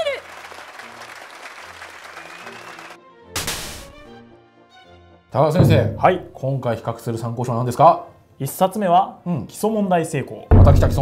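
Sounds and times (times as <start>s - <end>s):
applause with crowd cheering: 0.0s - 3.0s.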